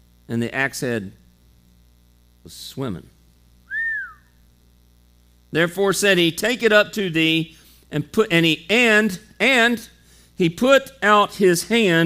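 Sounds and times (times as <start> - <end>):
faint electrical hum: 0.0 - 12.0
short whistled note: 3.7 - 4.4.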